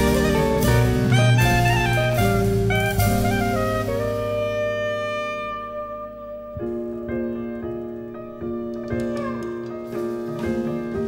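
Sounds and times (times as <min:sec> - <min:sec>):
piano: 0:00.0 - 0:11.0
saxophone: 0:00.0 - 0:11.0.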